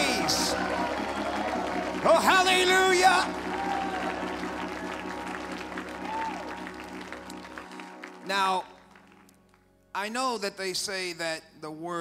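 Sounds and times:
light applause: 0.0 - 9.5
church music held chords: 0.0 - 12.0.

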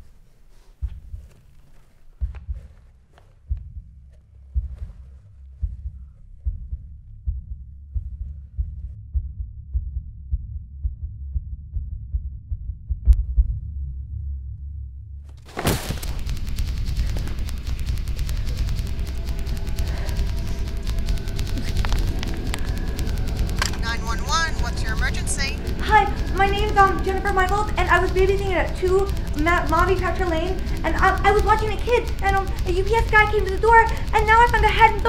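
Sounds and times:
low heartbeat thumping: 0.7 - 14.4, 15.6 - 35.0
steady low rumble: 2.1 - 35.0
high-pitched voice speaking: 23.8 - 35.0.

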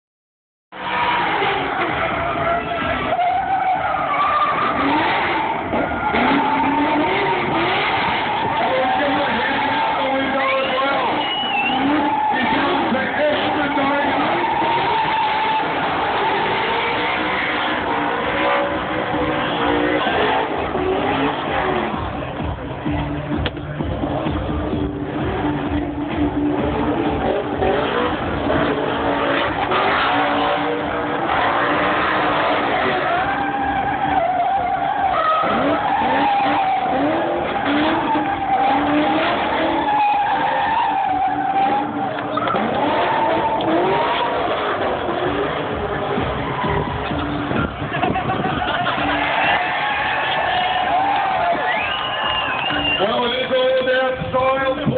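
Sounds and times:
car engine revving hard: 0.7 - 54.9
tyres squealing: 0.8 - 22.2, 25.5 - 54.8.

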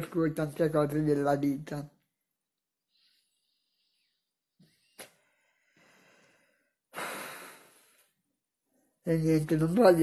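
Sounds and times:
man breathing: 2.8 - 8.2.

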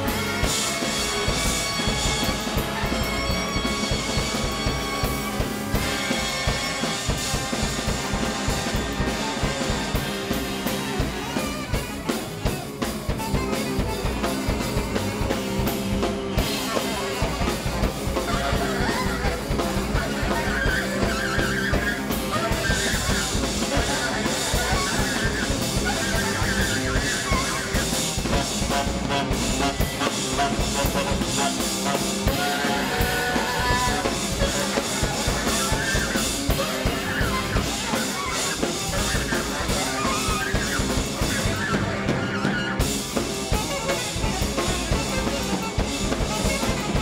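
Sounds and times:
drum kit: 0.0 - 47.0
jazz big band playing: 0.0 - 47.0
saxophone lines: 0.0 - 47.0.

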